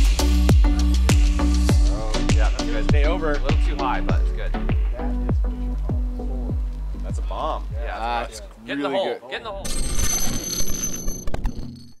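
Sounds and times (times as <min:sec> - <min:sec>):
high electronic ringing tones: 0:09.6 - 0:12.0.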